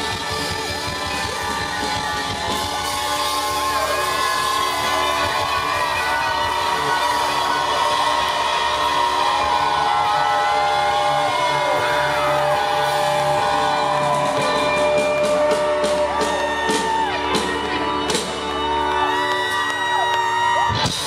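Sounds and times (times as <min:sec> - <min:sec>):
crowd cheering and whooping: 0:00.0 - 0:21.0
live rock band playing: 0:00.0 - 0:21.0.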